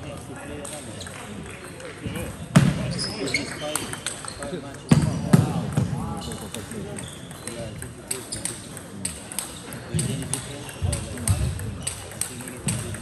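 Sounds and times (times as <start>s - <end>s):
sports hall chatter: 0.0s - 13.0s
ball clicking off bats and table: 3.4s - 5.8s, 6.4s - 13.0s.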